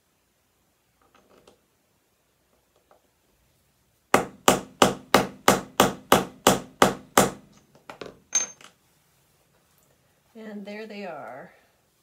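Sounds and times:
light knocks and clinks: 7.5 - 8.8.

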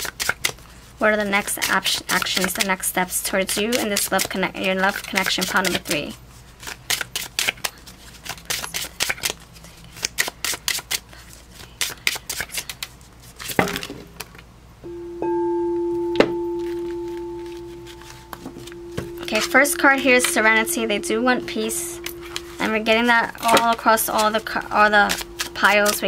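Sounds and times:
cards being shuffled: 0.0 - 0.6, 1.4 - 2.7, 3.5 - 14.5, 16.6 - 18.8, 23.4 - 26.0
bell-like tone ringing: 14.9 - 26.0.

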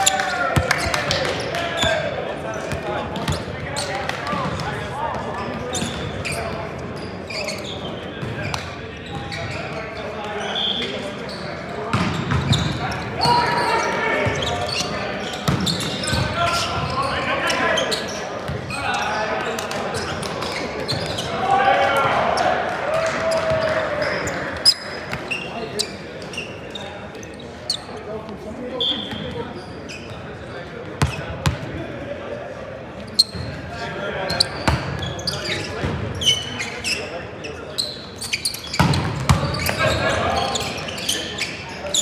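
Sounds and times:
sneaker squeaks on hardwood: 3.2 - 4.6, 5.4 - 19.0, 20.0 - 21.3, 23.4 - 28.0, 28.8 - 30.3, 31.0 - 31.6, 33.1 - 33.6, 34.3 - 42.0
players calling out: 12.1 - 30.1.

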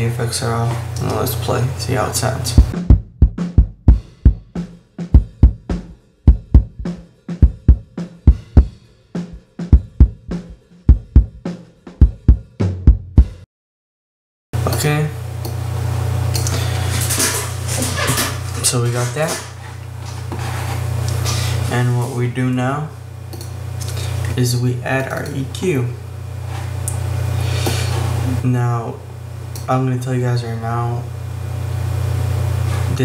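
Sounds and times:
steady low hum: 0.0 - 4.5, 5.1 - 8.7, 9.3 - 11.4, 14.6 - 33.0
low-pitched hum: 2.4 - 3.3.

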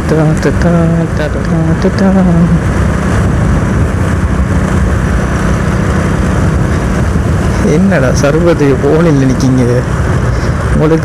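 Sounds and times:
motorcycle engine running: 0.0 - 11.0
road and wind rush: 0.0 - 11.0.

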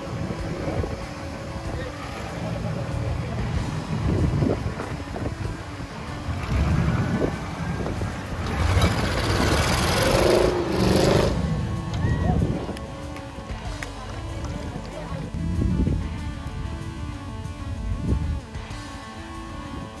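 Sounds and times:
crowd voices: 0.0 - 20.0
off-road vehicle engine revving: 0.0 - 20.0
tyres spraying sand: 0.0 - 20.0.

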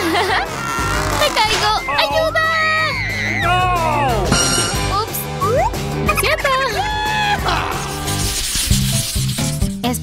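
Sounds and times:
background music with bass line: 0.0 - 10.0.

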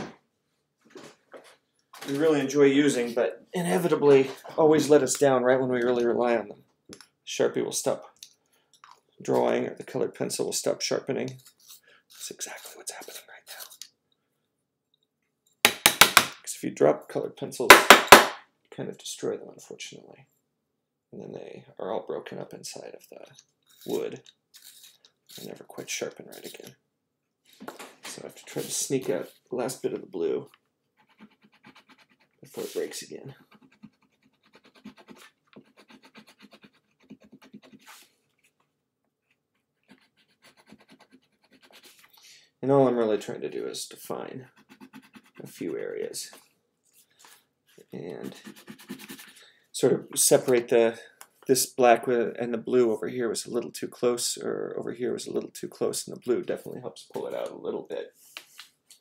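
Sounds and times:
pencil scratching on paper: 31.0 - 38.2, 39.7 - 42.2, 44.4 - 45.8, 48.1 - 49.4.

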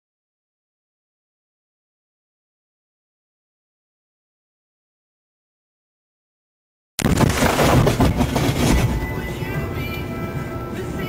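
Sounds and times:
windshield glass shattering: 7.0 - 9.2
loud crackling: 7.0 - 9.3.

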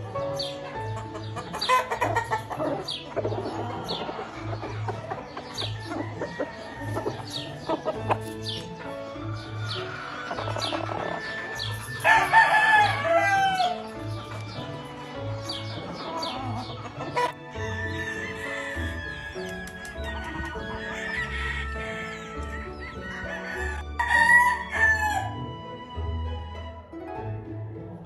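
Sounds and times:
roosters clucking: 0.0 - 25.6
roosters crowing: 0.0 - 26.4.

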